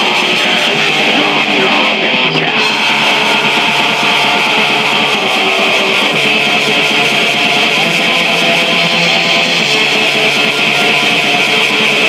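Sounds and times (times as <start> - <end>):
distorted black metal music: 0.0 - 12.0.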